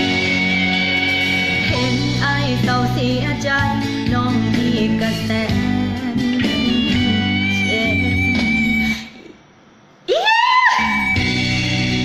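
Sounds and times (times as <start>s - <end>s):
backing music: 0.0s - 9.0s, 11.1s - 12.0s
high-pitched vocal whoop: 10.1s - 11.5s.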